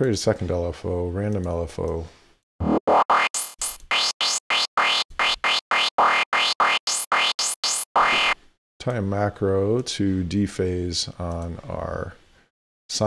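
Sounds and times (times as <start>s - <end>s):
distorted synth notes with filter sweep: 2.6s - 8.4s.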